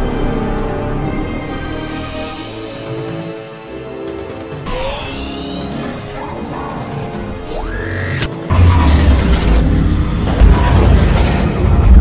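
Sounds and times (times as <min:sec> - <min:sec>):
music: 0:00.0 - 0:12.0
deep cinematic boom: 0:08.5 - 0:12.0.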